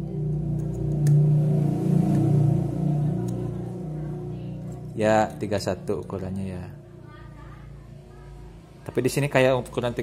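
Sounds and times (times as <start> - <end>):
vehicle engine rumbling: 0.0 - 8.0.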